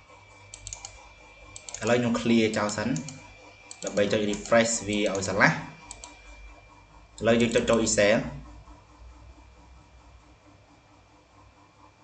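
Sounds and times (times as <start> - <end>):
computer mouse clicks: 0.5 - 6.2
person speaking: 1.6 - 6.1, 7.2 - 8.5.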